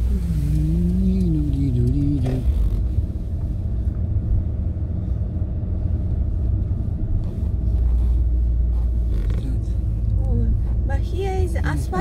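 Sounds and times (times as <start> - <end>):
car engine rumble: 0.0 - 12.0
tyres on wet road: 0.0 - 12.0.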